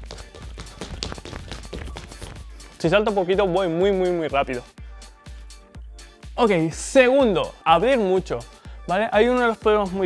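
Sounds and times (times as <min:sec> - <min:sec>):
sneakers tapping on wooden floor: 0:00.0 - 0:02.6
music: 0:00.0 - 0:10.0.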